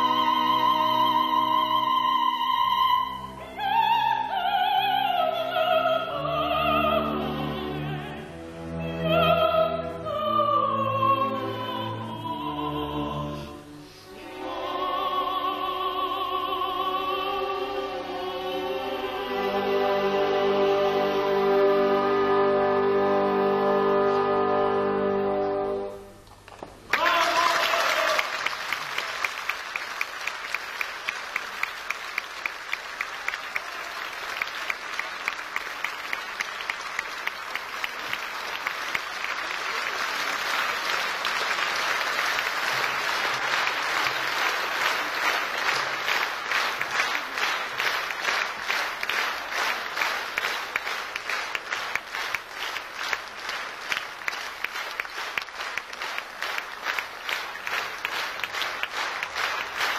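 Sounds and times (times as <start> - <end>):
audience applauding: 26.3 - 59.9
sharp claps: 26.5 - 59.9.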